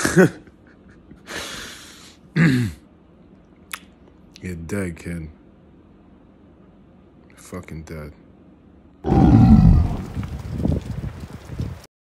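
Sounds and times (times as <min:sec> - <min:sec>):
loud roar dropping in pitch: 0:09.0 - 0:10.3
rough low rumble: 0:09.1 - 0:11.5.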